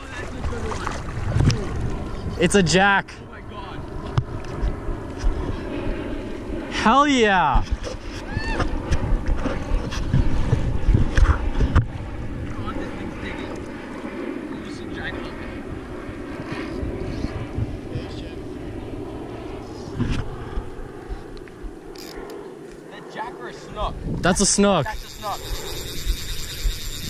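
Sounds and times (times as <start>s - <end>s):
wind gusting on microphone: 0.0s - 22.6s, 23.2s - 27.0s.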